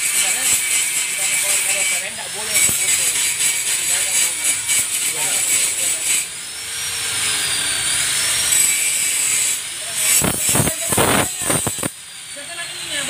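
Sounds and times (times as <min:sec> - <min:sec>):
rough scraping strokes: 0:00.0 - 0:11.9
power tool whining: 0:00.0 - 0:13.0.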